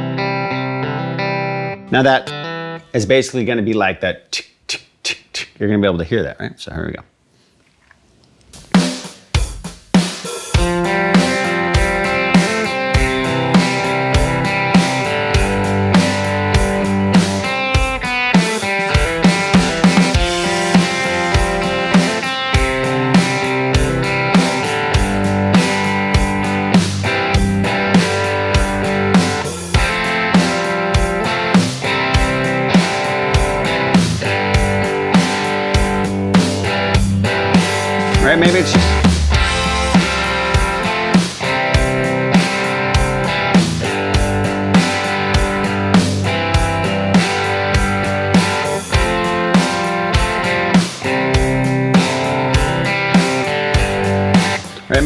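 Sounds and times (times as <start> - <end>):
electric guitar playing chords: 0.0 - 3.0, 10.5 - 55.0
drum-kit groove: 8.4 - 55.0.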